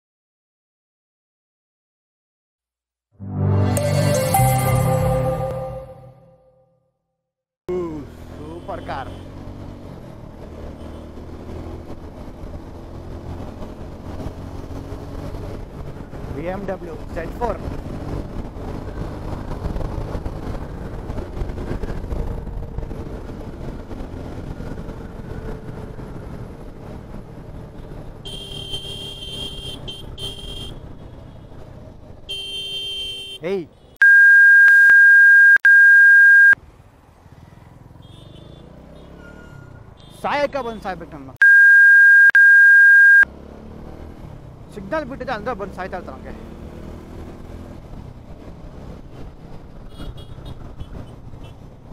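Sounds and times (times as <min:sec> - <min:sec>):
road and wind noise: 0:07.7 - 0:51.9
motorcycle engine cruising: 0:08.0 - 0:32.3, 0:43.3 - 0:51.9
censor bleep: 0:34.0 - 0:36.6, 0:41.4 - 0:43.2.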